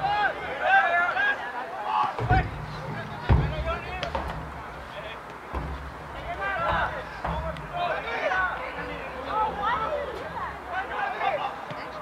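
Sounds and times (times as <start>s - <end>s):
distant players shouting: 0.0s - 12.0s
sharp thump: 2.2s - 8.0s.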